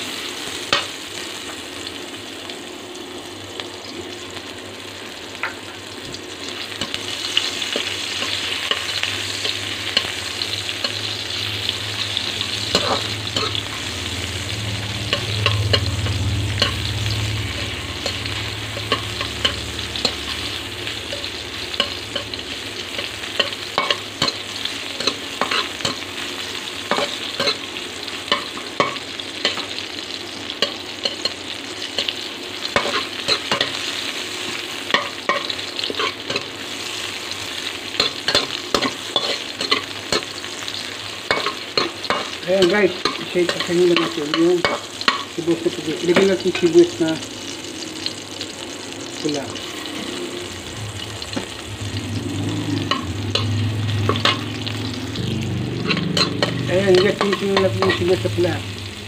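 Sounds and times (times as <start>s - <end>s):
onions sizzling in hot oil: 0.0s - 59.0s.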